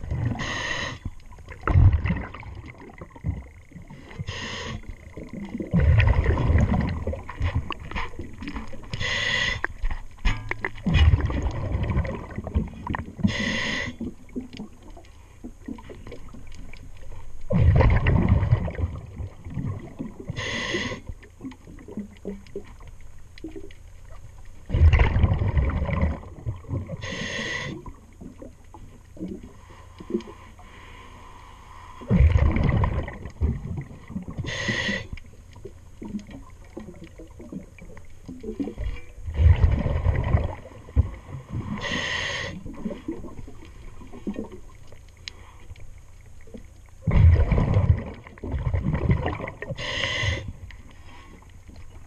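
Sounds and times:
exhaled bubbles rushing: 0:00.0 - 0:00.6, 0:01.3 - 0:04.2, 0:04.8 - 0:09.0, 0:10.5 - 0:13.4, 0:17.5 - 0:20.4, 0:24.7 - 0:27.1, 0:32.0 - 0:34.6, 0:35.6 - 0:42.0, 0:46.9 - 0:50.6
underwater water noise: 0:00.0 - 0:52.0
regulator inhale hiss: 0:00.3 - 0:01.2, 0:04.0 - 0:05.0, 0:08.9 - 0:09.8, 0:13.2 - 0:14.1, 0:20.3 - 0:21.2, 0:27.0 - 0:27.9, 0:29.6 - 0:32.1, 0:34.4 - 0:35.2, 0:41.6 - 0:42.7, 0:49.7 - 0:51.4
faint clicks and knocks: 0:09.6 - 0:11.7, 0:21.1 - 0:24.7, 0:42.7 - 0:47.1, 0:50.6 - 0:52.0
faint clicks: 0:43.6 - 0:47.0.

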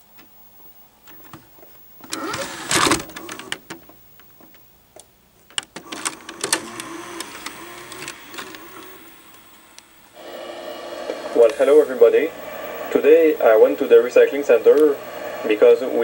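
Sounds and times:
steady mechanical hum: 0:00.0 - 0:16.0
mechanical clicks and clunks: 0:05.0 - 0:09.4.

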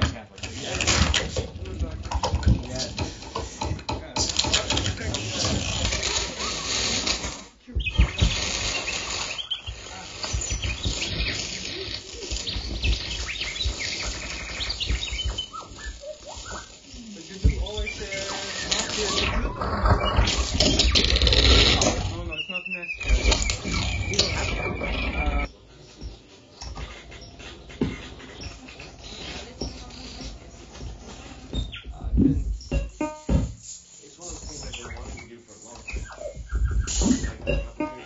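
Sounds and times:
glitchy electronic noise: 0:04.2 - 0:25.5
chirping pitch glides: 0:07.7 - 0:30.9.

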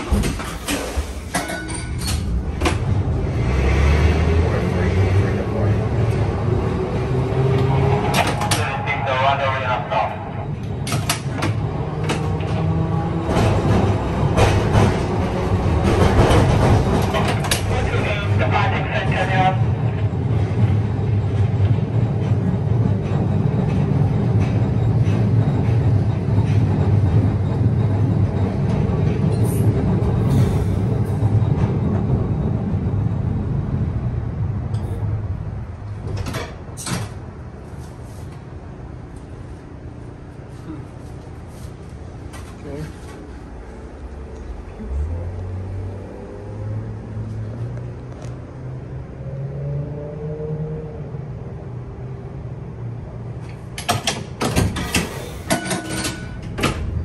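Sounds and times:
streetcar rumbling on track: 0:00.0 - 0:57.0
voices: 0:08.2 - 0:10.5, 0:17.4 - 0:20.0.

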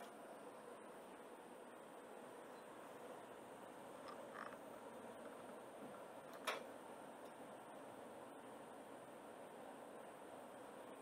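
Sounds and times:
oven hum: 0:00.0 - 0:11.0.

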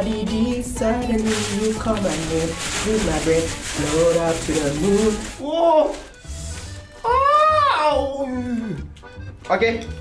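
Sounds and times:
man's falsetto cry of pain: 0:05.4 - 0:06.0, 0:07.0 - 0:08.8.

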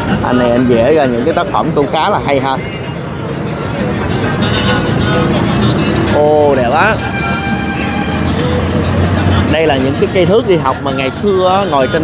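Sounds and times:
large vehicle engine running: 0:02.6 - 0:11.4
steady horn tone: 0:06.5 - 0:08.8.

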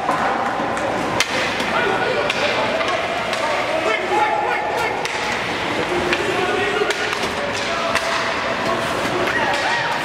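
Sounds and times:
hockey stick striking puck: 0:00.0 - 0:03.6, 0:05.0 - 0:05.4, 0:06.0 - 0:10.0
crowd chatter and shouts: 0:00.0 - 0:10.0.

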